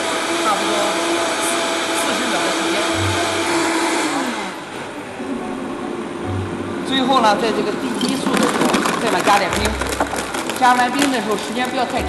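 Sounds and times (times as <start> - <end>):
blender running: 0.0 - 4.8.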